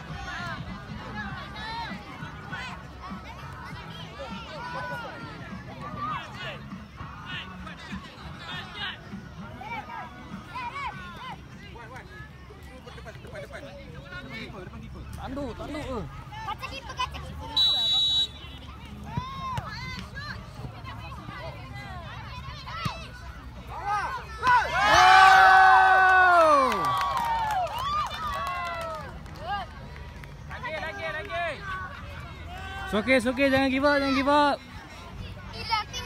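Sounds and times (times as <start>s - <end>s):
crowd chatter: 0.0s - 36.0s.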